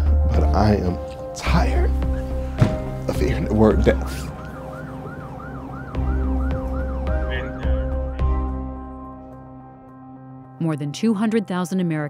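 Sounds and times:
deep thump: 2.6 - 3.0
emergency siren yelping: 3.7 - 8.6.

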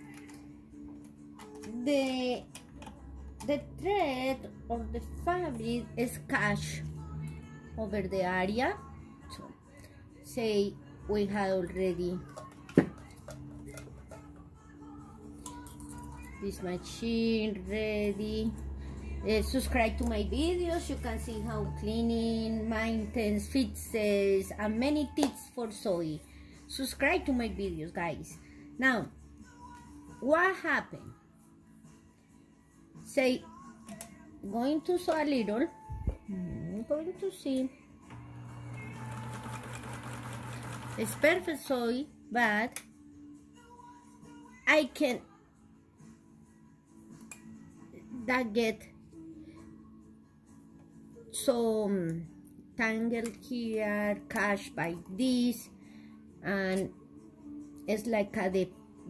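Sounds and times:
sewing machine stitching: 38.1 - 41.4.

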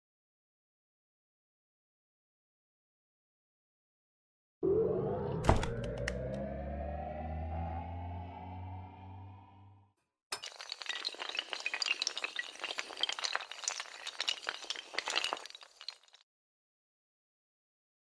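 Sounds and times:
low hum: 4.6 - 9.9
rising synth swell: 4.6 - 9.9
clattering of small falling pieces: 10.4 - 16.2.

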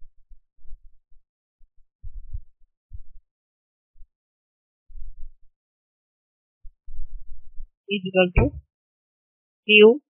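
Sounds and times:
soft muffled low thumps: 2.0 - 3.2, 4.9 - 5.4, 6.6 - 8.6.

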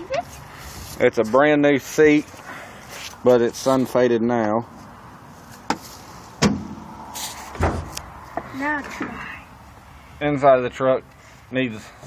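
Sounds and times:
dull knocks in truck cab: 6.4 - 6.8.

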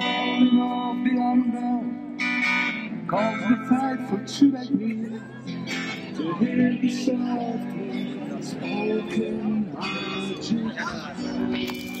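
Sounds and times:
person singing: 0.0 - 2.2, 3.0 - 12.0
strummed guitar: 0.0 - 12.0.

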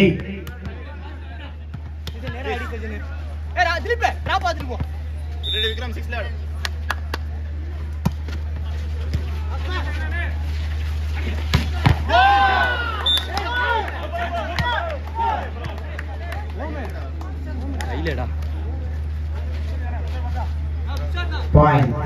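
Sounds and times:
volleyball hits: 11.4 - 15.9
people shouting: 11.8 - 15.6.

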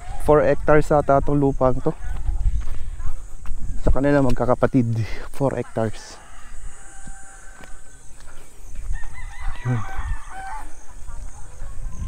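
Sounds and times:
rooster crowing: 5.6 - 8.1, 8.8 - 10.9.

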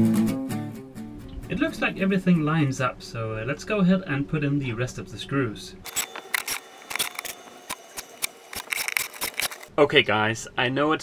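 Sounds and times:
cordless drill whining: 5.9 - 9.7
screws clicking and knocking: 5.9 - 9.7.

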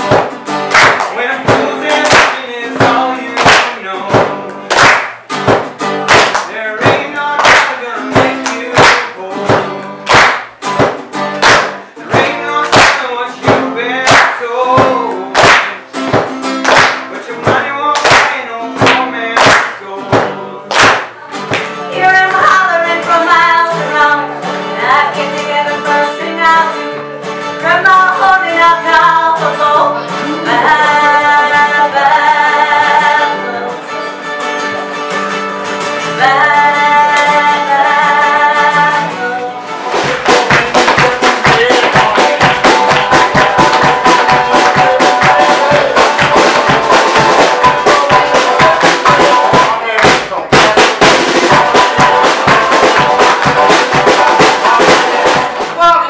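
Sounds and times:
acoustic guitar strumming: 0.0 - 56.0
person singing: 0.8 - 4.8, 6.4 - 10.2, 11.6 - 35.1, 36.0 - 56.0.

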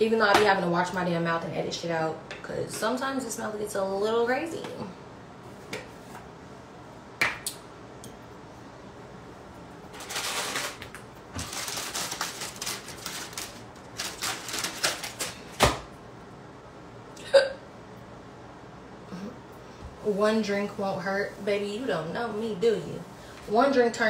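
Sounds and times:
rustling: 9.9 - 15.5.

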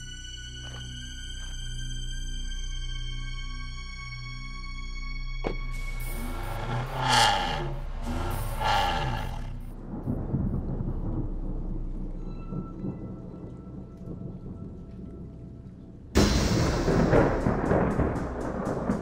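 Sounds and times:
car engine revving: 5.5 - 9.7
low rumble of thunder: 6.0 - 19.0.

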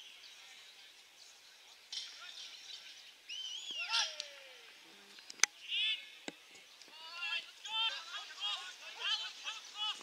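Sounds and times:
bird chirping: 0.0 - 3.9.

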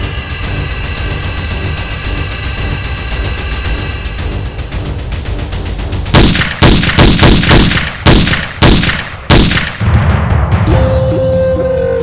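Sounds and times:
pistol shots with echo: 6.1 - 9.8.

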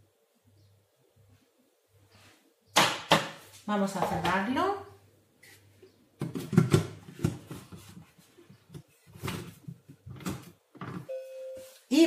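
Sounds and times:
machine beep: 11.1 - 11.8.

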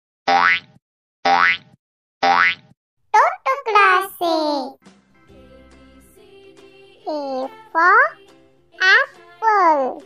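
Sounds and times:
high sliding voice: 3.2 - 4.7, 8.8 - 10.0.

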